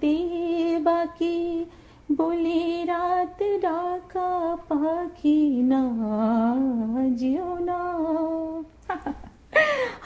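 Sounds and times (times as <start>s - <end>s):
woman singing unaccompanied: 0.0s - 8.8s.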